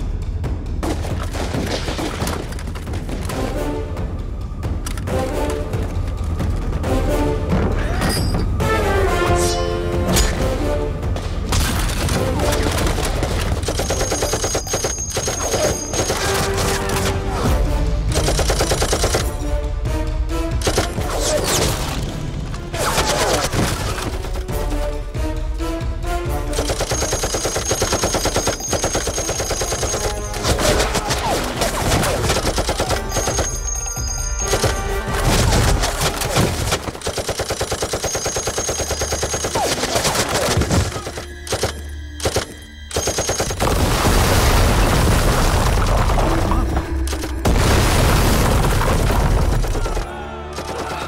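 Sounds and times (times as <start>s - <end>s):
machine gun firing: 11.8s - 17.2s, 18.1s - 19.3s, 26.6s - 33.8s, 34.4s - 45.6s.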